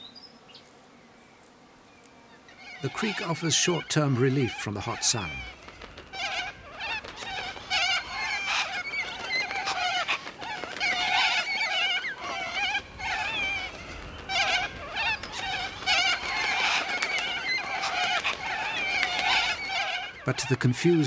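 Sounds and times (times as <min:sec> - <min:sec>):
animals chirping and warbling: 0:02.3 - 0:21.0.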